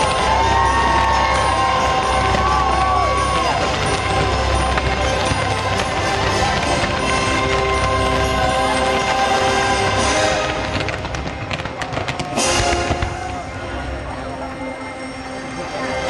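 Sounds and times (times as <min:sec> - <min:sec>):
firework cracks and pops: 0:00.0 - 0:13.6
orchestral music: 0:00.0 - 0:16.0
loud firework burst: 0:01.5 - 0:13.6.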